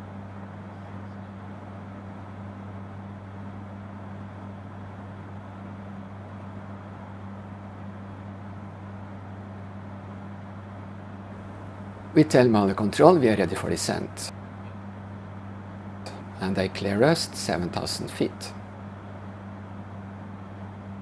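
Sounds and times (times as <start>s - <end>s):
aircraft cockpit drone: 11.3s - 14.3s
broad rushing noise: 11.3s - 14.3s.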